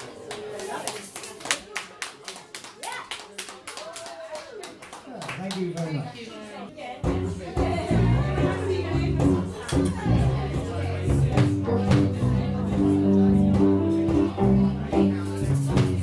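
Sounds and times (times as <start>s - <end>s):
rhythmic hand clapping: 0.0s - 5.9s
voices: 6.1s - 16.0s
live band with bass guitar: 7.0s - 16.0s.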